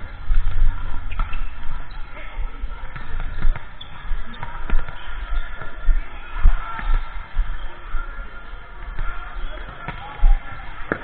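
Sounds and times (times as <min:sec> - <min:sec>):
faint voices in a gym: 0:00.0 - 0:11.0.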